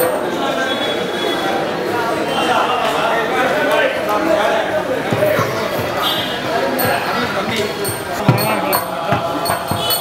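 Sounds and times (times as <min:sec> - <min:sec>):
crowd of voices: 0:00.0 - 0:10.0.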